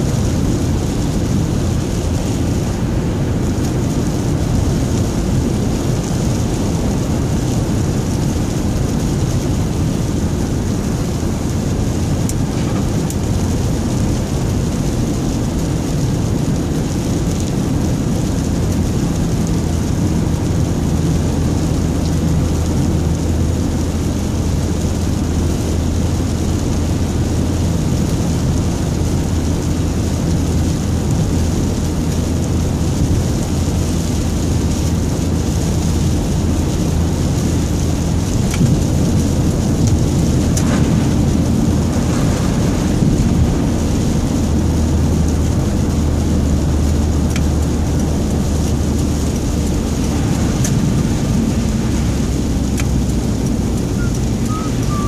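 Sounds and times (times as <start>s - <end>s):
low engine hum: 0.0s - 55.0s
tyres hissing on wet road: 0.0s - 55.0s.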